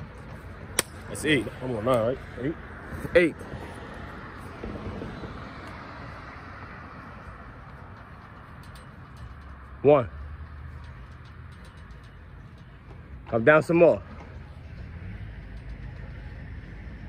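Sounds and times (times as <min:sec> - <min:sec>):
passing road traffic: 0:00.0 - 0:17.0.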